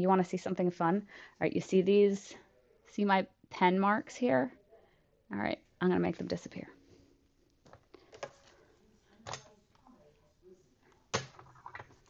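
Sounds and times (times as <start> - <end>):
soft knocks and handling: 6.9 - 12.0.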